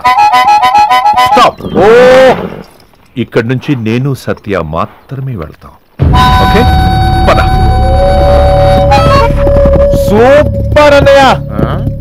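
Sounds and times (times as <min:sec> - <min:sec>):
film background music: 0:06.0 - 0:12.0.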